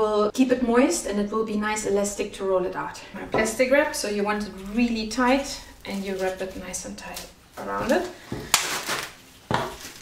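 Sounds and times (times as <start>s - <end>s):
plastic cling wrap crinkling: 4.2s - 10.0s.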